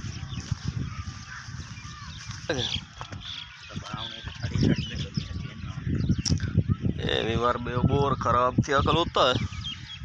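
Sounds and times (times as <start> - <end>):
thumps and rumble on microphone: 0.0 - 9.9.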